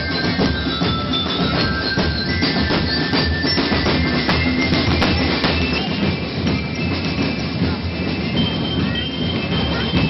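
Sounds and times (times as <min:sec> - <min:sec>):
crowd and street rumble: 0:00.0 - 0:10.0
percussion band drumming: 0:00.0 - 0:10.0.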